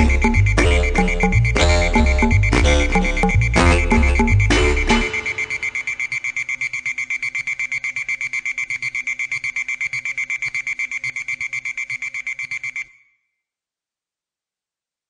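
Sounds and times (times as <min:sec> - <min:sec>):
high-pitched electronic beep pulsing: 0:00.0 - 0:12.9.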